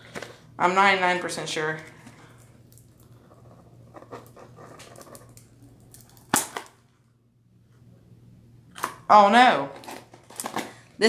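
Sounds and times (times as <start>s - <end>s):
steady low hum: 0.0s - 9.2s.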